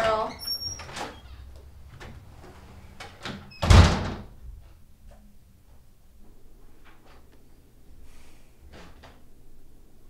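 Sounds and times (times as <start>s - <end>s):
door slamming shut: 3.0s - 4.4s.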